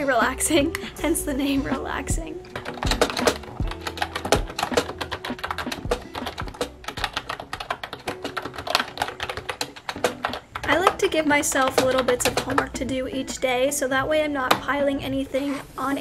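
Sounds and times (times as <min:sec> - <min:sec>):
background music: 0:00.0 - 0:16.0
fast typing on keyboard: 0:02.5 - 0:12.8.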